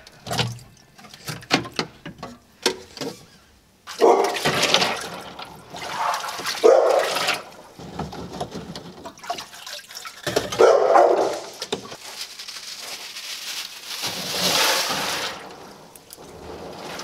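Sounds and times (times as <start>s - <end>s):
water splashing and sloshing: 0.0s - 3.2s, 3.8s - 12.1s, 13.6s - 17.0s.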